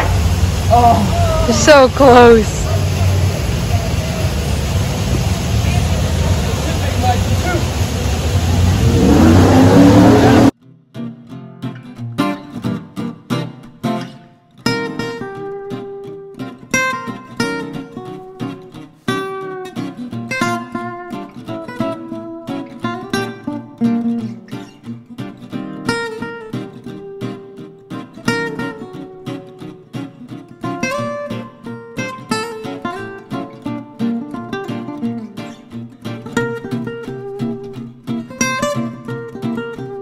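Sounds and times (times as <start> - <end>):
outdoor background noise: 0.0 - 10.6
plucked acoustic guitar: 8.6 - 40.0.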